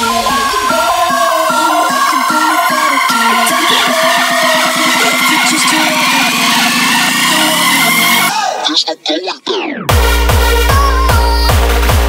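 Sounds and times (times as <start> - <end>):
noise sweep: 0.0 - 8.3
rising synth tone: 0.0 - 8.3.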